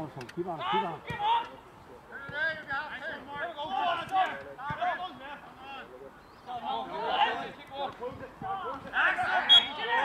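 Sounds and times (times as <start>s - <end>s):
players shouting: 0.6s - 5.9s, 6.5s - 10.0s.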